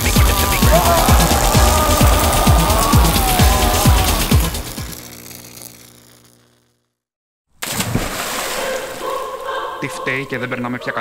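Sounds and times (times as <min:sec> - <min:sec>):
music with deep drum beat: 0:00.0 - 0:04.7.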